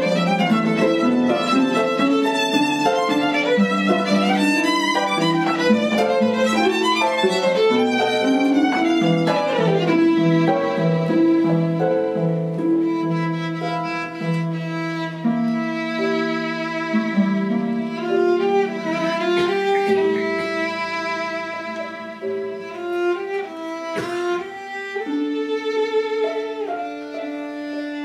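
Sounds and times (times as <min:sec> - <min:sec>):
harp playing: 0:00.0 - 0:28.0
violin long bowed notes: 0:00.0 - 0:28.0.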